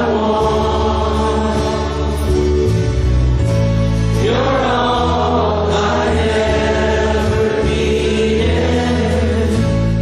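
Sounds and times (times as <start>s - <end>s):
group singing slow worship song: 0.0s - 2.9s, 4.0s - 10.0s
instrumental accompaniment: 0.0s - 10.0s.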